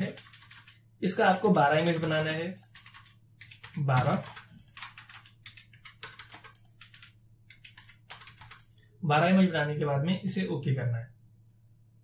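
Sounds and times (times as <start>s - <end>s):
computer keyboard clicks: 0.0s - 8.8s.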